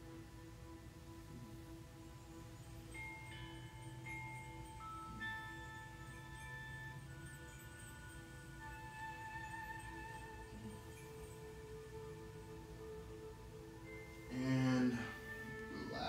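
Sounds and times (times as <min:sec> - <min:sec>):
soft zen background music: 0:00.0 - 0:16.0.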